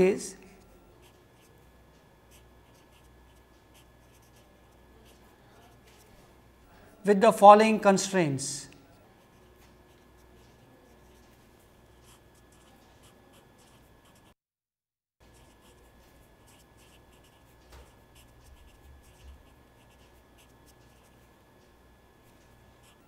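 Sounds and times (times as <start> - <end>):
marker scratching on paper: 1.0 - 1.6, 2.3 - 6.2, 9.0 - 14.4, 15.2 - 21.3, 22.4 - 23.0.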